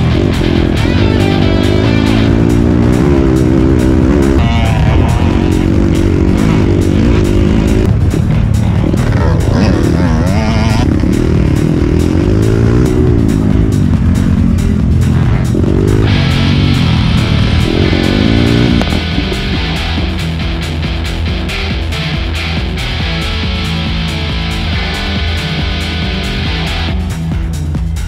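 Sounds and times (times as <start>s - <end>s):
dirt bike engine revving: 0.0s - 27.5s
rock music with drum beat: 0.0s - 28.0s.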